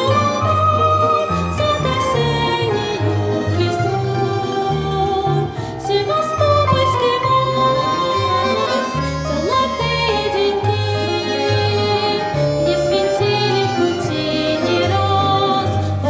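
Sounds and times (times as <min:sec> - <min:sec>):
folk orchestra of plucked strings: 0:00.0 - 0:16.0
woman singing a waltz: 0:00.0 - 0:16.0.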